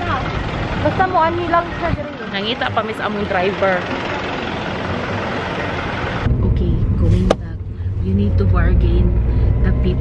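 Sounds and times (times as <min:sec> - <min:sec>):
steady rushing engine noise: 0:00.0 - 0:10.0.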